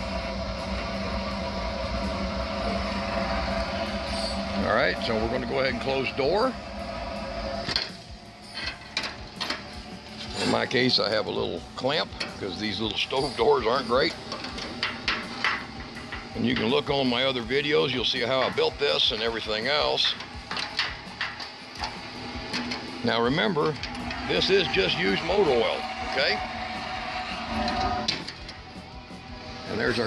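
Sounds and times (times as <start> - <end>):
oil heater humming: 0.0 - 30.0.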